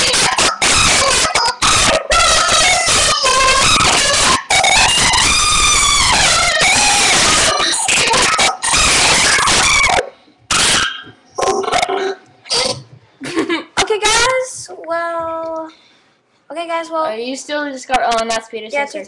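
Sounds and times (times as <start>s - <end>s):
distorted children's song playback: 0.0s - 16.0s
children's voice sounds: 16.5s - 19.0s.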